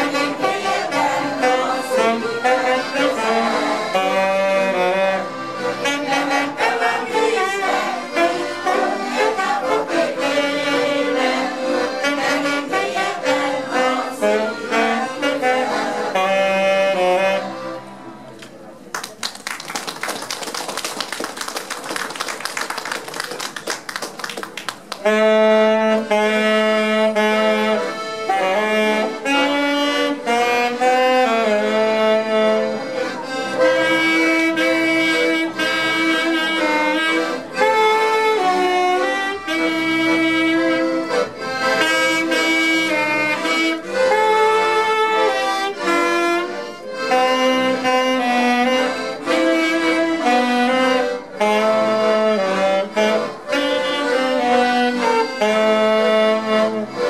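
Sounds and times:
accordions and saxophone playing: 0.0s - 18.3s, 20.5s - 57.0s
applause: 18.9s - 25.0s.

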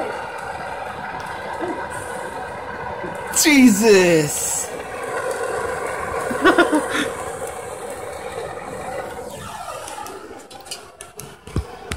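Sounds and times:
short voice sound: 3.4s - 4.7s.

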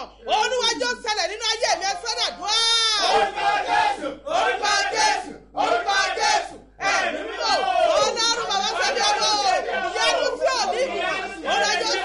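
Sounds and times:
woman shouting prayer: 0.0s - 3.2s, 4.5s - 5.2s, 5.8s - 12.0s.

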